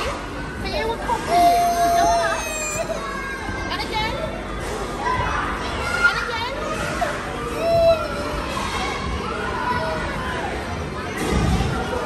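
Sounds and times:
toddlers chattering and squealing: 0.8 - 3.8, 5.5 - 10.6.

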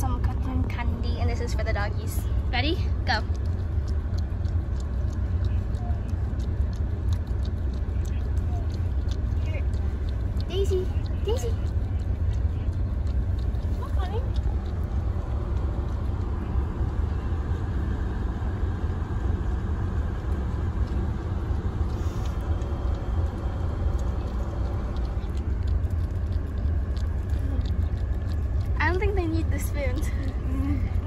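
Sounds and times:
car engine idling: 0.0 - 31.0
faint voices: 4.9 - 19.6, 20.8 - 31.0.

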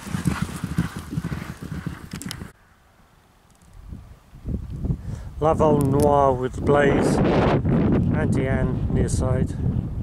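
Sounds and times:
horses galloping on grass: 0.0 - 2.6.

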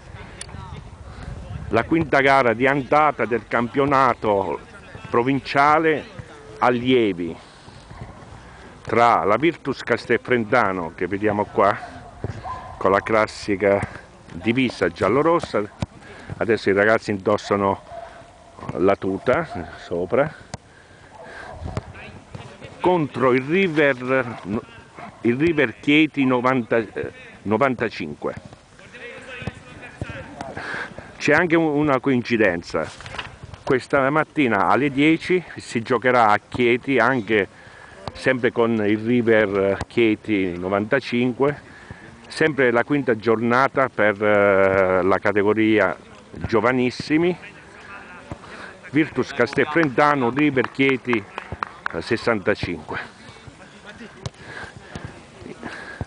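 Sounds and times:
footballs kicked thuds: 12.1 - 12.6, 13.3 - 17.3, 21.6 - 25.6, 27.6 - 31.5, 46.3 - 47.4, 48.2 - 50.2, 52.4 - 56.0.

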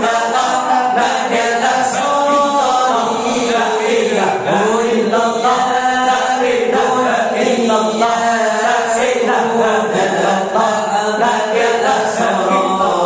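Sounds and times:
men chanting in unison: 0.0 - 13.0.

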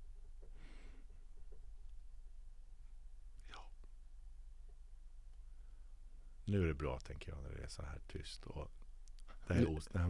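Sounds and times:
faint breath-like hiss: 0.4 - 1.4, 5.4 - 6.4.

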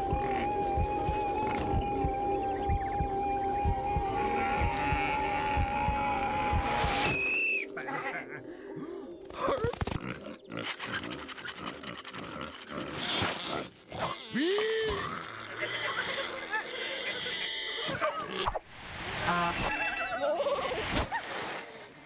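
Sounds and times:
animal grunting: 9.3 - 18.2.

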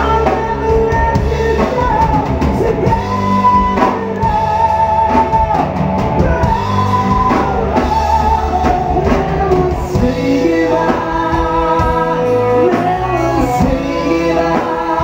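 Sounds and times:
drum kit: 0.0 - 15.0
guitar: 0.0 - 15.0
person singing: 0.0 - 15.0.

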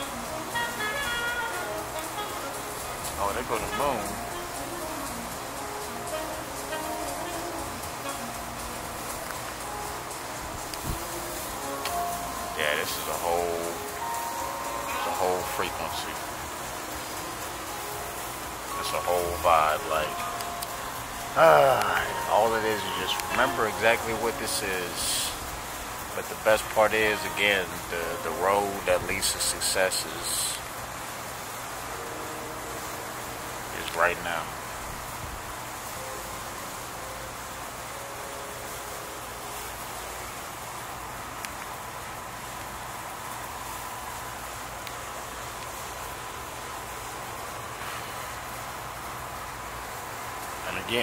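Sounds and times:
faint high steady tone: 0.0 - 30.7
background hiss: 0.0 - 51.0
man talking: 3.0 - 4.4, 11.9 - 14.1, 14.8 - 16.4, 18.7 - 20.4, 21.2 - 25.5, 26.1 - 30.7, 33.7 - 34.6, 50.6 - 51.0.

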